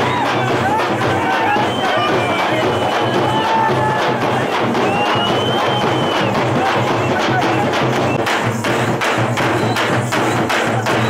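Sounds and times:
large drums beaten with sticks: 0.0s - 11.0s.

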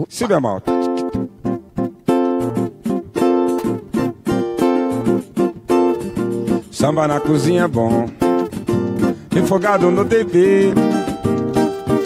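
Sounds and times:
cavaquinho strumming: 0.2s - 12.0s
acoustic guitar strumming: 0.3s - 12.0s.

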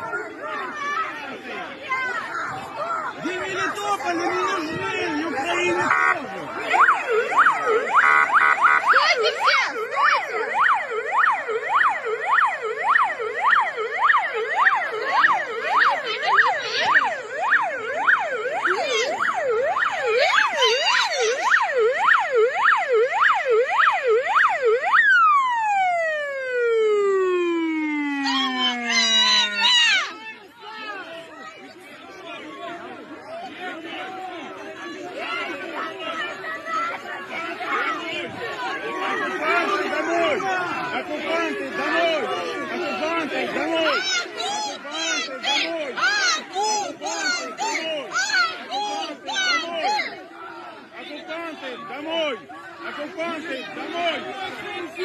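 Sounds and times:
electronic siren yelping: 4.2s - 30.2s
indistinct voices: 25.7s - 55.0s.

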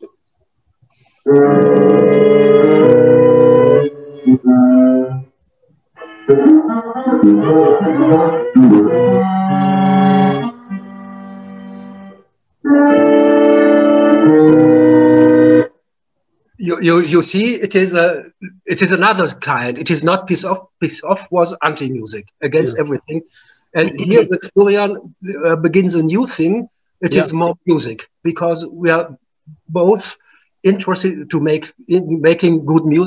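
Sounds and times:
electronic flute: 1.0s - 5.3s, 6.0s - 15.8s
tenor saxophone: 1.2s - 5.3s, 6.0s - 15.8s.

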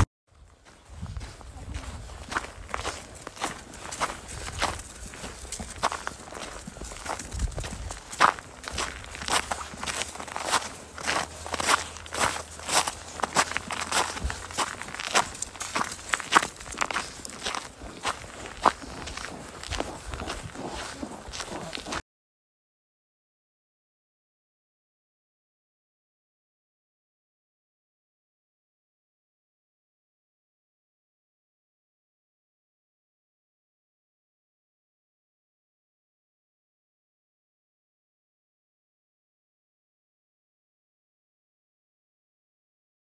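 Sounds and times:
footsteps crunching in snow: 0.4s - 22.0s.

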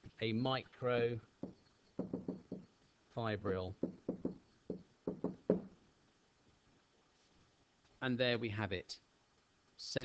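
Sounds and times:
pen knocking on writing board: 1.4s - 2.7s, 3.8s - 5.7s.

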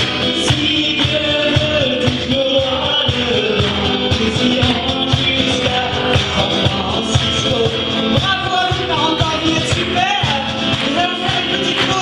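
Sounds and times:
cajon low thumps: 0.0s - 12.0s
person singing: 0.0s - 12.0s
strummed acoustic guitar: 0.0s - 12.0s.

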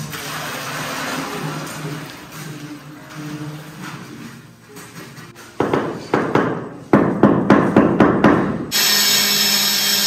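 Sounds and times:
slurry pouring into plastic bucket: 0.0s - 2.6s.

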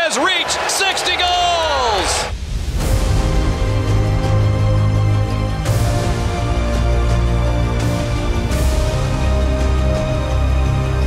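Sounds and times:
announcer's excited shout: 0.0s - 2.3s
deep bass music: 2.7s - 11.0s.

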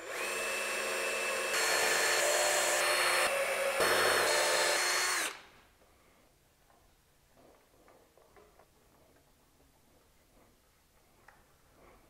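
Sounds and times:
cordless drill whining: 0.0s - 5.4s.

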